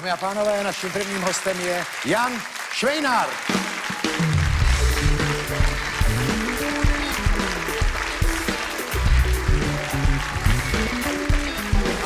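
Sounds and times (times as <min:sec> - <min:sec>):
drums: 0:03.2 - 0:12.0
keyboard: 0:03.6 - 0:12.0
bass guitar: 0:04.5 - 0:12.0.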